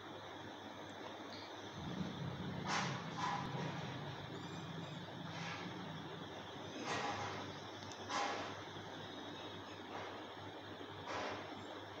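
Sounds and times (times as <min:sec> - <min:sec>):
low hum: 0:01.7 - 0:08.1.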